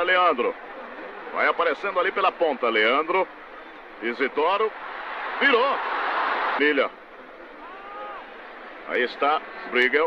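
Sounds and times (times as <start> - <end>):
stadium crowd murmur: 0.0 - 10.0.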